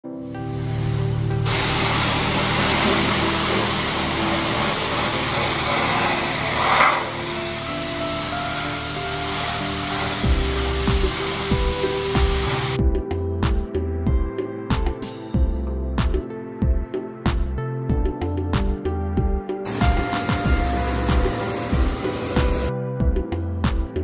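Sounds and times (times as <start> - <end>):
background music: 0.0 - 24.0
pressure washer spraying water: 0.5 - 12.8, 19.7 - 22.7.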